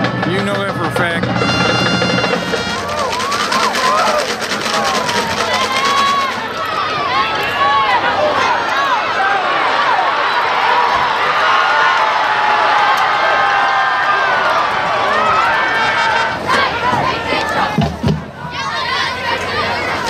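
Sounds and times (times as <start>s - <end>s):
fast drumming: 0.0s - 6.8s
crowd shouting and cheering: 0.0s - 20.0s
band playing held chord: 0.9s - 3.7s.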